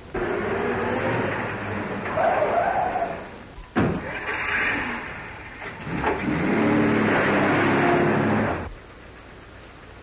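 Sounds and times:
car engine revving: 0:00.1 - 0:03.4, 0:04.0 - 0:08.7.

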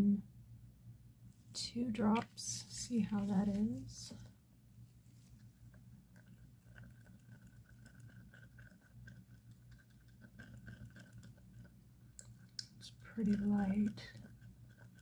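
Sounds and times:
faint steady hum: 0:00.0 - 0:15.0
stir stick scraping plastic cup: 0:05.3 - 0:15.0.

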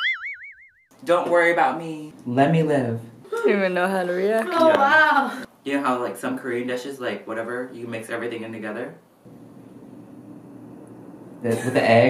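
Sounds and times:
low rushing room tone hiss: 0:05.5 - 0:12.0.

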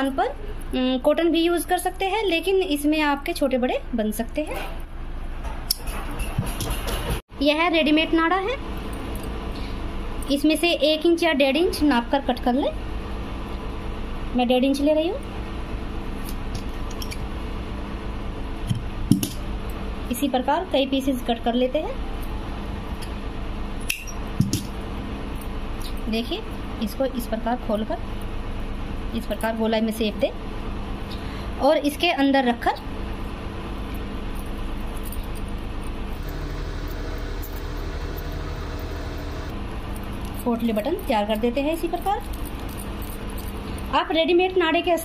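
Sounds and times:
machine hum and hiss: 0:22.0 - 0:44.1.

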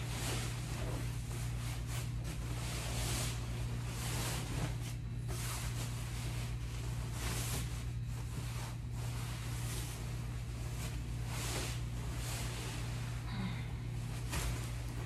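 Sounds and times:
fabric rustling and sliding: 0:00.0 - 0:15.0
steady low hum: 0:00.0 - 0:15.0.

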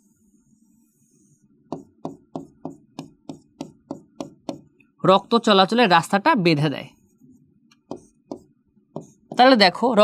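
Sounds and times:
pen tapping on writing board: 0:01.7 - 0:04.7, 0:07.8 - 0:09.6.

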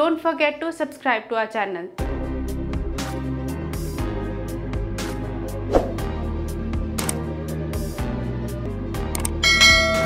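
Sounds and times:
background music: 0:00.0 - 0:10.0
notification bell chime: 0:09.4 - 0:10.0.

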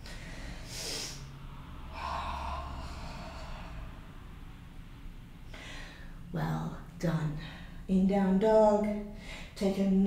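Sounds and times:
woman breathing: 0:00.0 - 0:04.6, 0:05.4 - 0:06.3, 0:09.1 - 0:09.6.

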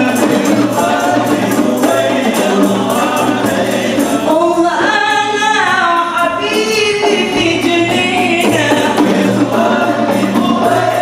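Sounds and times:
frame drums beating: 0:00.0 - 0:11.0.

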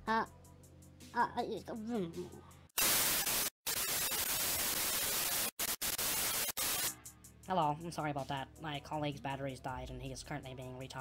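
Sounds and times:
television static hiss: 0:02.8 - 0:06.9.

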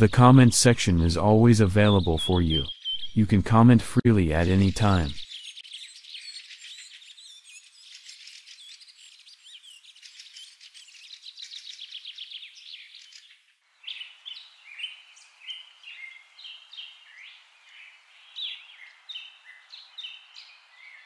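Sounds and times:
birds chirping and trilling: 0:00.0 - 0:21.0.

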